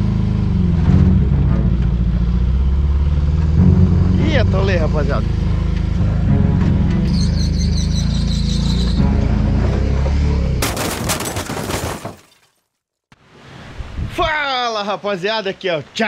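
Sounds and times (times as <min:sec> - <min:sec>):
small car engine droning: 0:00.0 - 0:10.6.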